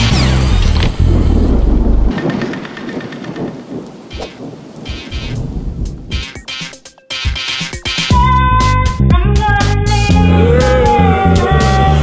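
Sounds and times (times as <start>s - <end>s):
music with bass notes: 0.0s - 2.1s, 5.8s - 12.0s
rushing crackling noise: 0.0s - 7.9s.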